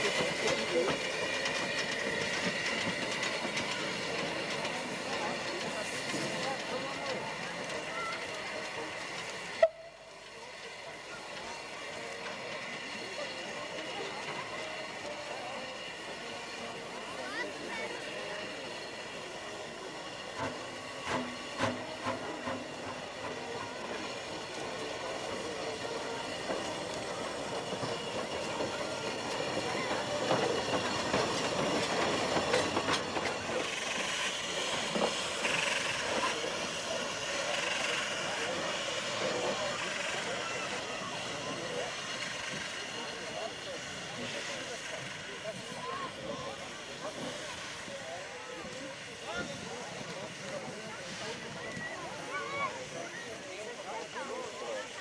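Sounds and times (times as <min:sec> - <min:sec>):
wheels clicking over rails: 0:00.0 - 0:54.8
steam hissing: 0:00.0 - 0:55.0.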